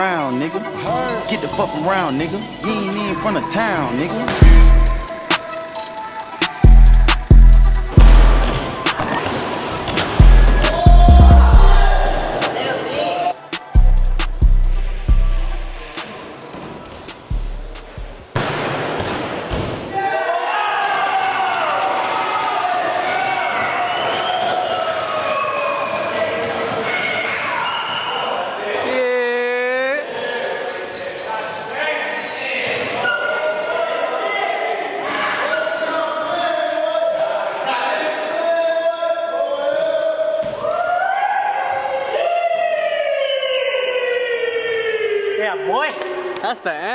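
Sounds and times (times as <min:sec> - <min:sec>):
instrumental soundtrack music: 0:00.5 - 0:18.3.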